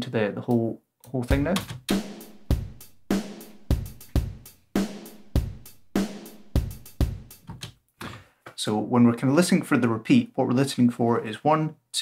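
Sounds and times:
programmed drum loop: 1.2 - 7.7
hi-hat hits: 1.3 - 7.5.

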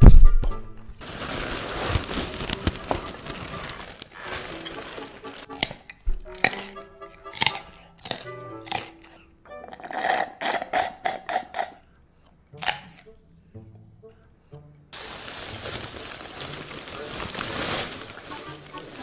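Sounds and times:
soft background music: 0.2 - 19.0
crunching cereal: 1.0 - 9.2, 15.0 - 19.0
sipping through a straw: 9.8 - 11.9.

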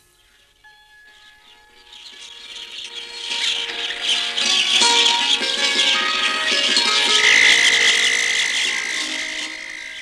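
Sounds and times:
background music: 0.6 - 10.0
high-pitched insect trill: 1.1 - 10.0.

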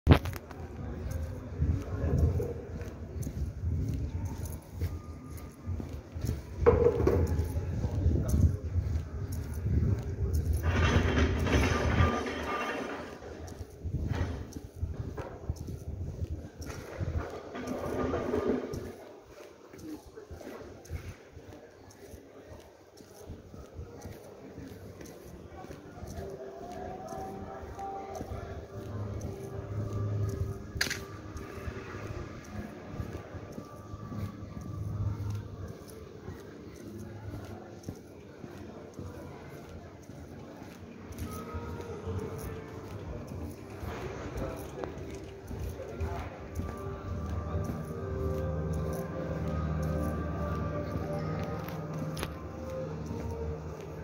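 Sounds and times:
indistinct voices: 0.1 - 54.0.

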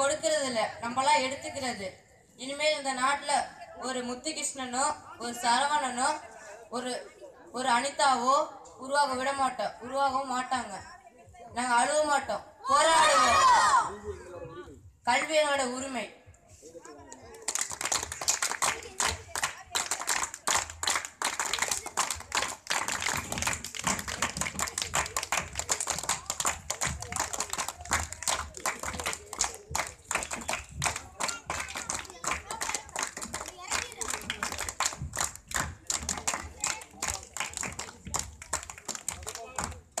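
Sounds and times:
crowd clapping: 17.3 - 40.0.

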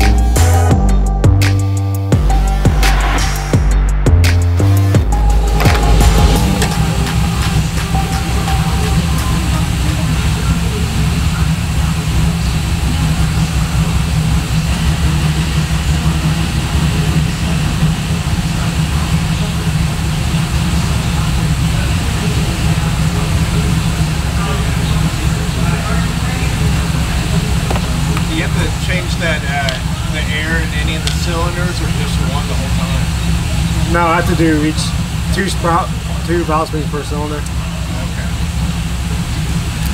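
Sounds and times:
low mechanical rumble: 0.0 - 39.9
faint voices: 5.3 - 39.9.

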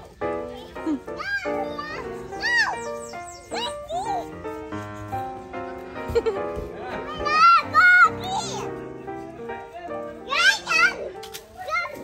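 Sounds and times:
cheerful background music: 0.0 - 12.0
toddler squealing: 1.2 - 4.4.

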